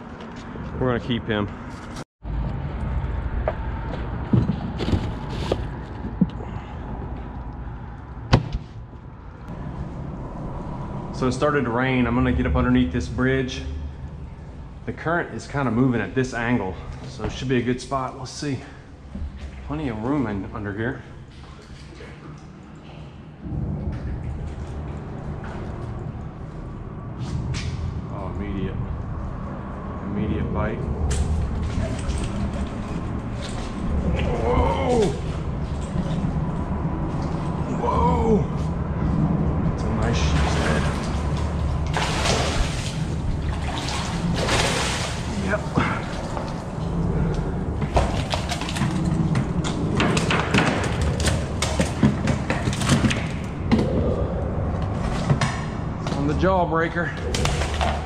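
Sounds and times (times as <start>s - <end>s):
fish splashing in water: 40.1s - 54.4s, 57.2s - 58.0s.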